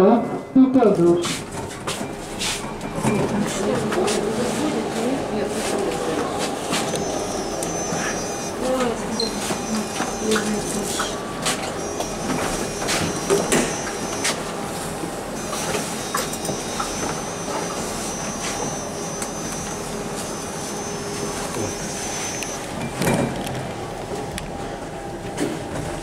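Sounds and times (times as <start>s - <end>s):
elevator car running noise: 0.0s - 26.0s.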